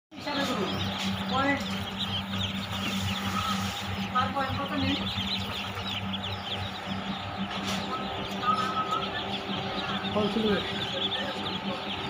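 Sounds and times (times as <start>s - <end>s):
ducklings peeping: 0.1s - 12.0s
steady low hum: 0.2s - 12.0s.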